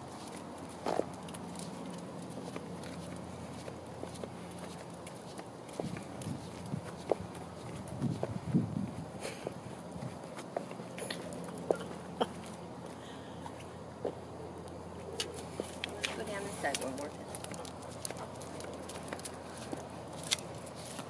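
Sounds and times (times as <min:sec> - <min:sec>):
footsteps on asphalt: 0:00.0 - 0:21.0
low steady background noise: 0:00.0 - 0:21.0.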